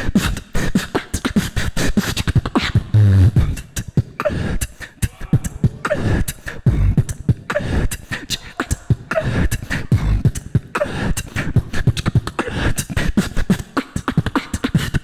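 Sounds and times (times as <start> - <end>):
beatboxing through a microphone: 0.0 - 15.0.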